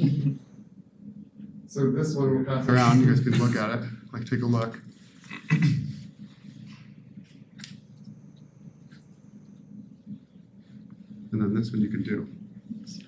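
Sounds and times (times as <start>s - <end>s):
thin high whine: 0.0s - 13.0s.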